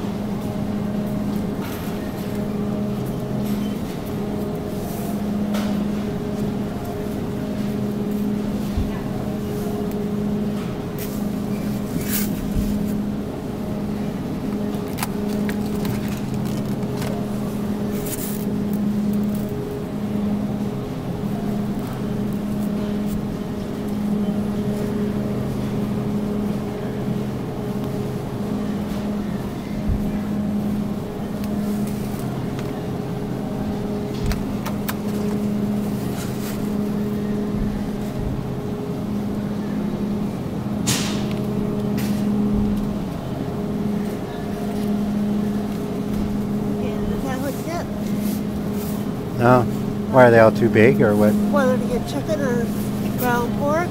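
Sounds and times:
refrigerated display case hum: 0:00.0 - 0:53.9.

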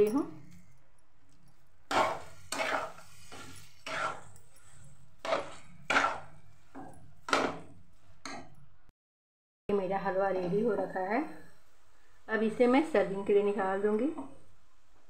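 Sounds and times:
metal spatula scraping metal pan: 0:01.9 - 0:06.5.

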